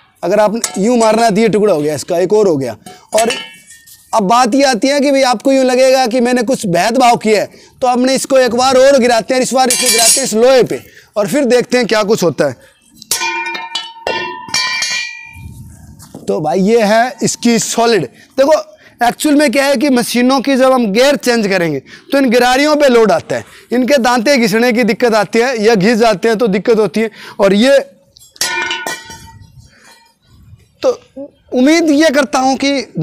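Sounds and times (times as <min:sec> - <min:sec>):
metal gear clanging on concrete: 0:00.4 - 0:02.1, 0:02.8 - 0:04.2, 0:09.6 - 0:10.6, 0:13.0 - 0:15.5, 0:28.1 - 0:30.2
metal gear clanging on iron: 0:09.7 - 0:10.4, 0:13.1 - 0:15.4.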